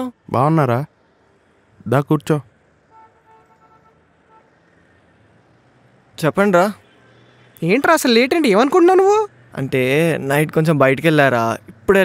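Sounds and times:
distant street traffic hum: 0:00.0 - 0:12.0.

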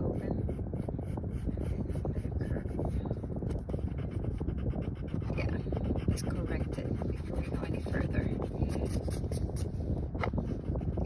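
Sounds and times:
pencil scratching on paper: 0:00.0 - 0:09.7, 0:10.4 - 0:11.0
low rumble: 0:00.0 - 0:11.0.

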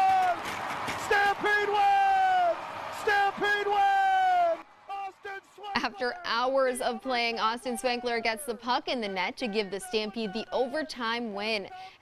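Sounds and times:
announcer shouting goal call: 0:01.1 - 0:11.7.

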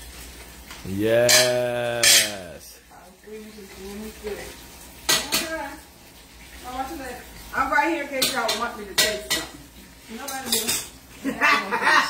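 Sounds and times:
utensil clattering against pots: 0:01.3 - 0:02.3, 0:08.1 - 0:09.6, 0:10.2 - 0:11.0.

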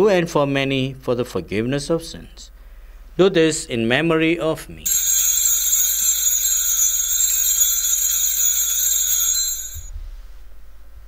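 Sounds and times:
altar bells jingling: 0:04.8 - 0:09.9.

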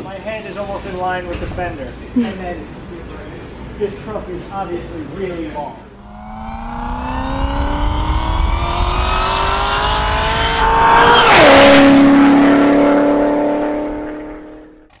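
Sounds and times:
car engine accelerating: 0:06.0 - 0:15.0.

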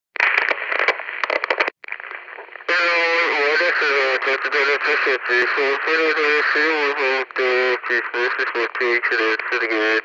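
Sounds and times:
radio voice chatter: 0:02.5 - 0:10.0.

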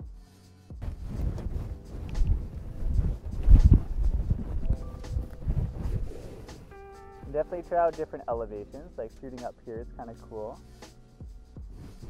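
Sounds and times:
twigs rustling against microphone: 0:00.8 - 0:07.2
microphone handling thumps: 0:00.8 - 0:07.5.

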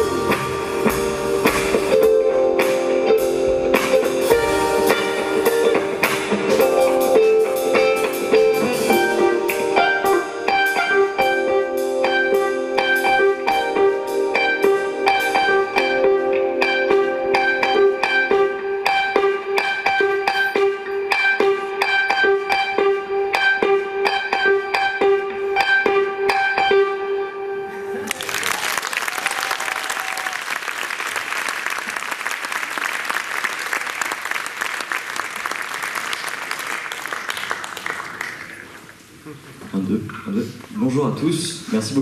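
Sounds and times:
jazz quartet playing: 0:00.0 - 0:27.9
audience applauding: 0:28.0 - 0:39.2.

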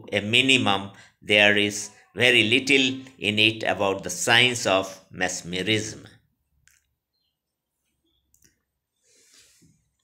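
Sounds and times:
soft rustle or breath: 0:08.9 - 0:10.0.

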